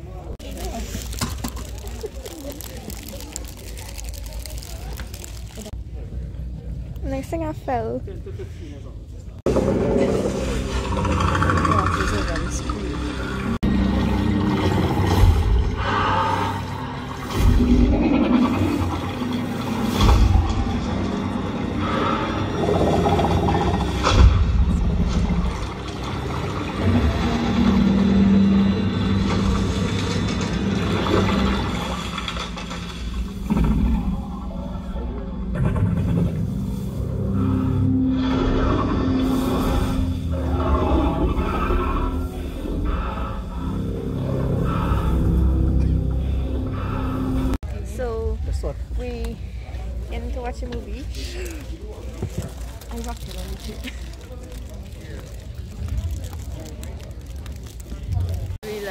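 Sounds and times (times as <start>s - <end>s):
film soundtrack through speakers: 0.0s - 58.9s
sustained low tones: 9.4s - 49.3s.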